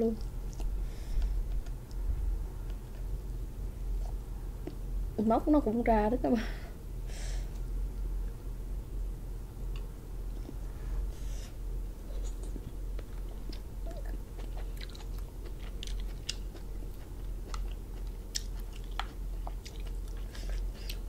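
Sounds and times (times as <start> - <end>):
steady low hum: 0.0 - 21.0
chewing: 0.2 - 2.0, 12.1 - 21.0.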